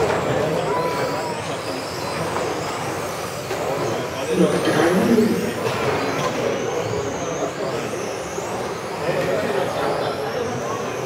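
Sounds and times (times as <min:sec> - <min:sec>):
radio-controlled cars motor whine: 0:00.0 - 0:11.0.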